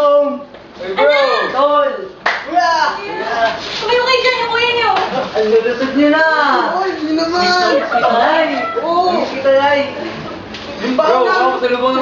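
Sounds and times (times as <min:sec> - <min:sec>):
voices calling out greetings: 0:06.0 - 0:12.0.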